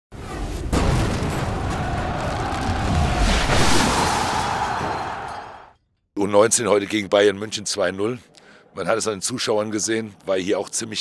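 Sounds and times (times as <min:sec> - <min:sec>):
rushing booming swell: 0:00.8 - 0:05.3.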